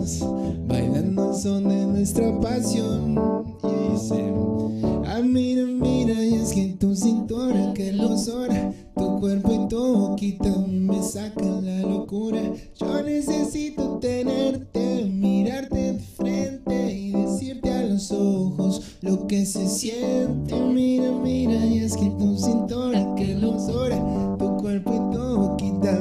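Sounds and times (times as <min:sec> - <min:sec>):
instrumental chord accompaniment: 0:00.0 - 0:26.0
man singing into microphone: 0:00.0 - 0:26.0.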